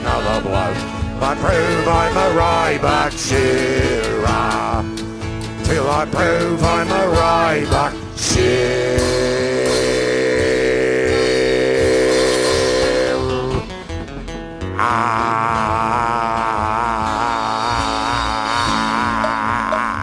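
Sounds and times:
steady low drone: 0.0 - 14.2
long vibrato note: 9.4 - 13.7.

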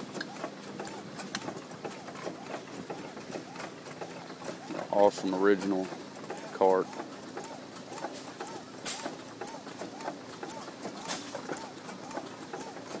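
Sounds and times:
antique gas engine running: 0.0 - 13.0.

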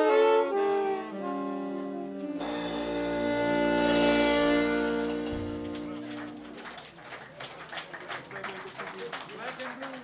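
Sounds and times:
jazz band chord: 0.0 - 6.6.

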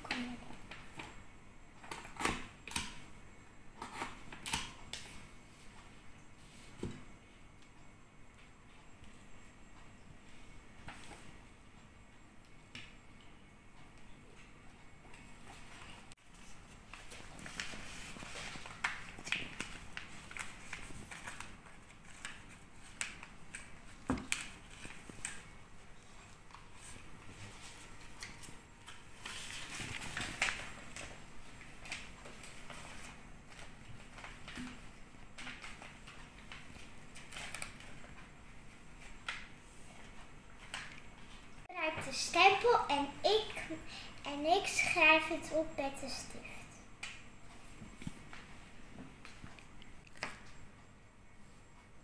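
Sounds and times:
paper rustling: 15.4 - 42.8
paper and plastic tools rustling: 26.1 - 34.8.

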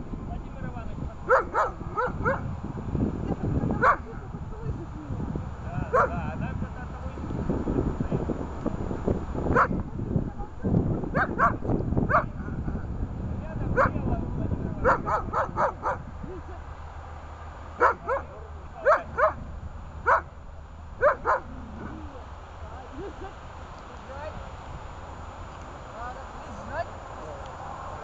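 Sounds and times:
dog barking: 1.3 - 2.5, 3.8 - 4.2, 5.9 - 6.2, 9.5 - 9.9, 11.1 - 12.6, 13.7 - 14.1, 14.8 - 16.0, 17.8 - 19.4, 20.1 - 20.3, 21.0 - 22.0.

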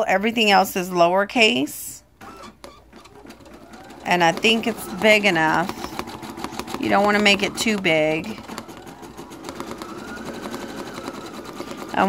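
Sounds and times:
embroidery machine stitching: 2.2 - 12.0.

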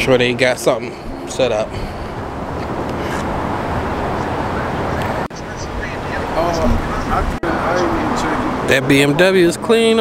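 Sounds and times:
wind buffeting microphone: 0.0 - 9.1.

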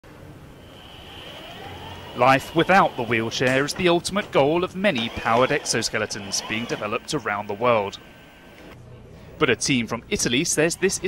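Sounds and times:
electric motors whining: 0.5 - 8.8, 10.3 - 11.0.

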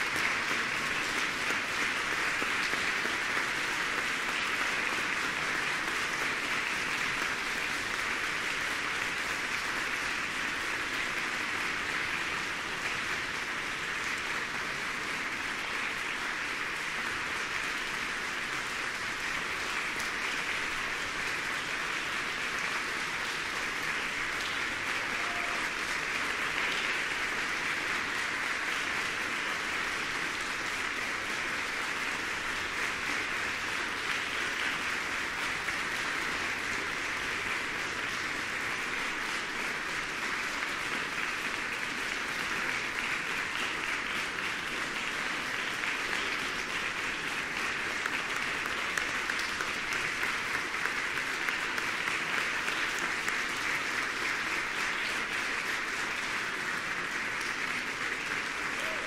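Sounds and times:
audience applauding: 0.0 - 59.0.

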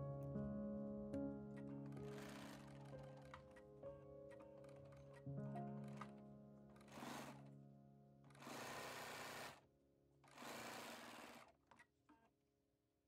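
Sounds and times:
sewing machine stitching: 1.6 - 3.6, 4.3 - 6.2, 6.8 - 7.6, 8.3 - 9.6, 10.2 - 11.9.

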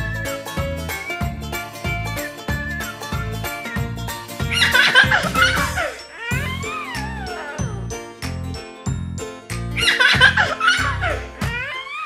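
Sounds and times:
background music with steady beat: 0.0 - 12.0
animal cry falling in pitch: 6.2 - 7.8.

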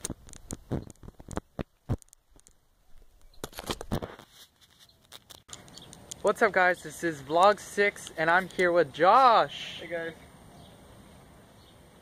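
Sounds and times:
corn leaves rustling: 0.0 - 5.6.

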